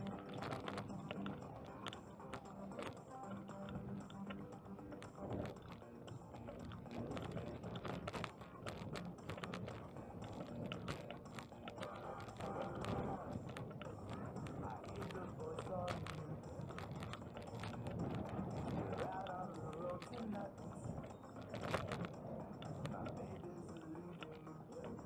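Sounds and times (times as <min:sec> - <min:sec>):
bicycle rattling over pavement: 0:00.0 - 0:25.0
indistinct voices: 0:00.0 - 0:25.0
street noise: 0:00.0 - 0:25.0.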